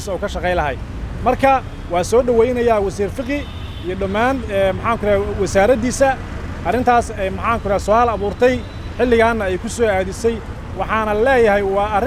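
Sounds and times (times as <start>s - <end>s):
low rumble of street traffic: 0.0s - 12.0s
man talking: 0.0s - 12.0s.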